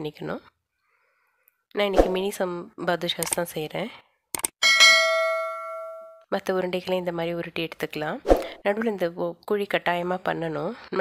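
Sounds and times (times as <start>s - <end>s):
bright bell ding: 4.6s - 6.2s.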